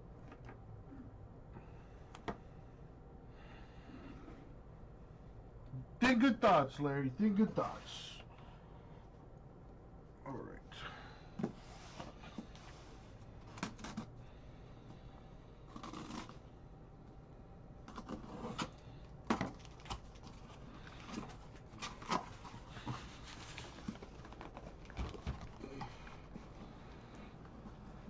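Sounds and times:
hands handling cardboard box: 19.3s - 26.7s.

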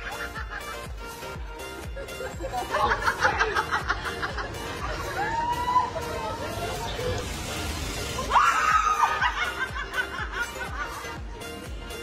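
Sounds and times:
background music with steady beat: 0.0s - 12.0s
woman laughing: 2.0s - 7.1s, 8.8s - 11.1s.

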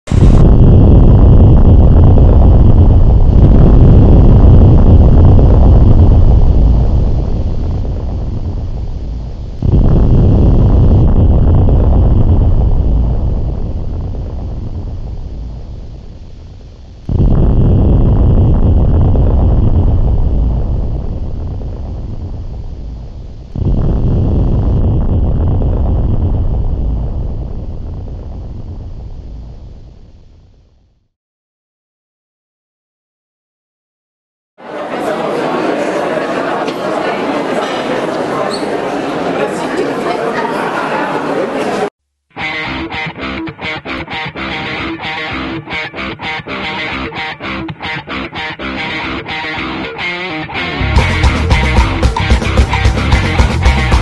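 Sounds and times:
deep rumbling noise: 0.0s - 31.1s, 42.6s - 54.0s.

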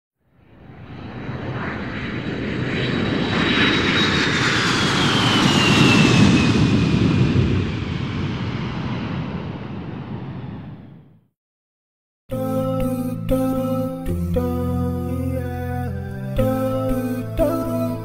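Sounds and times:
airplane flying past: 0.3s - 11.2s
high engine whine: 0.4s - 11.2s.

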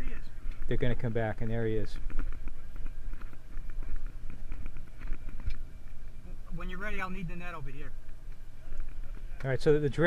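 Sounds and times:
low rumble of wind and boat: 0.0s - 10.0s.

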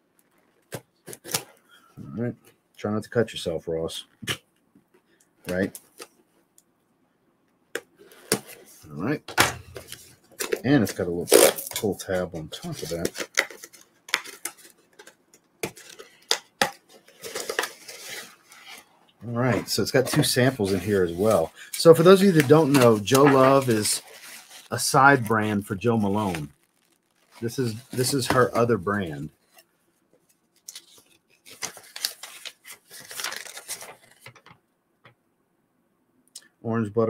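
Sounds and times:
packaging rustling: 9.5s - 34.5s.

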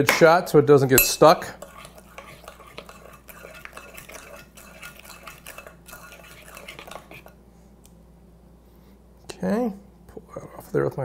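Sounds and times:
spoon stirring thick batter: 0.8s - 7.4s
spoon clinking against bowl: 1.0s - 1.8s.

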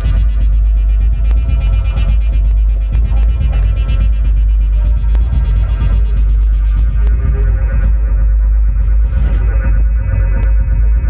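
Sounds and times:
steady higher synth tones: 0.0s - 11.0s
synthesizer bass drone: 0.0s - 11.0s.

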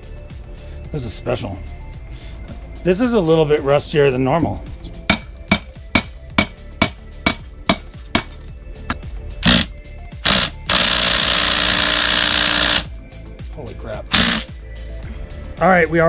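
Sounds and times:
cordless drill running: 9.4s - 12.9s, 14.1s - 14.5s.

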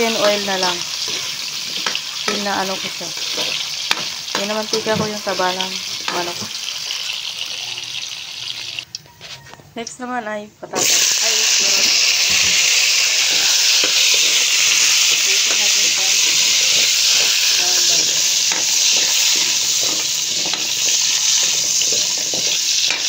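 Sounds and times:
spatula scraping wok: 0.0s - 6.6s, 10.7s - 23.0s
vegetables sizzling in oil: 0.0s - 8.9s, 10.7s - 23.0s.

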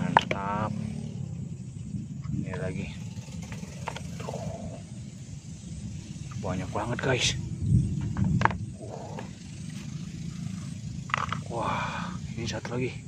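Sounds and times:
steady low rumble: 0.0s - 13.0s
wordless vocal sounds: 11.4s - 13.0s.

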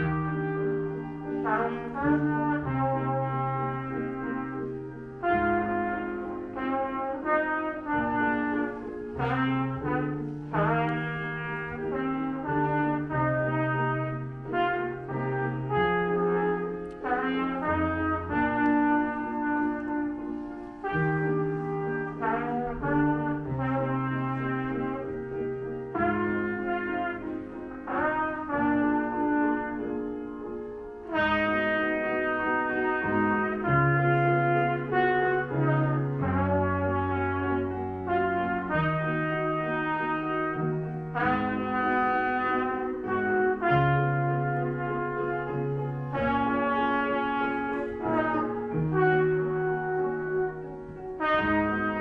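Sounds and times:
grand piano accompaniment: 0.0s - 52.0s
trumpet melody: 0.0s - 52.0s.

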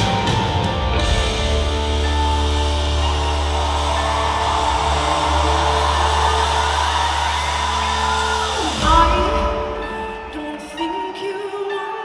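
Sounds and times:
live rock band playing: 0.0s - 10.6s
low bass drone: 1.0s - 8.9s.

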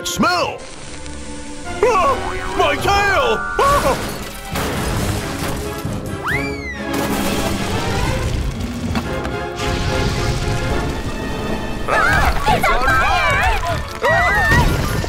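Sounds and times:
cartoon background music: 0.0s - 15.0s
rising and falling whistle: 1.7s - 4.0s.

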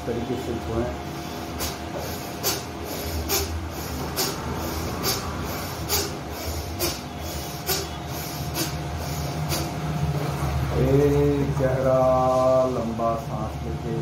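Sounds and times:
man breathing forcefully through nose: 1.1s - 10.0s.

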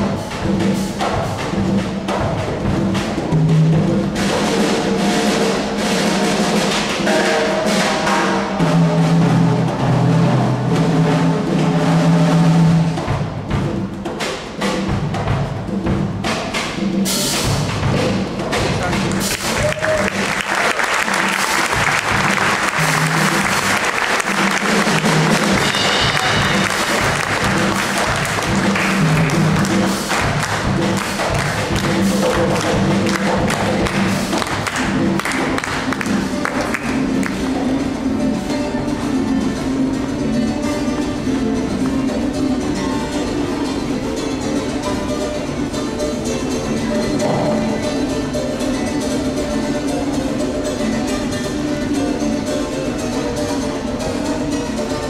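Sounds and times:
drum kit beat: 0.0s - 44.2s, 45.8s - 50.9s.

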